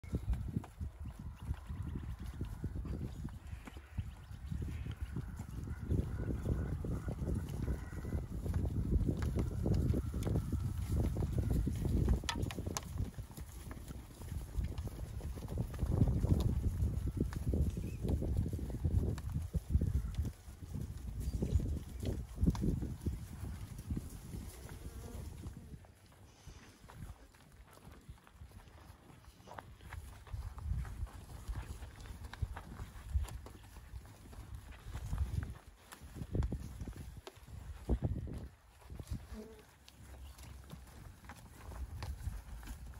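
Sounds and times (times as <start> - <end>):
cattle hooves thudding on grass: 0.0 - 42.9.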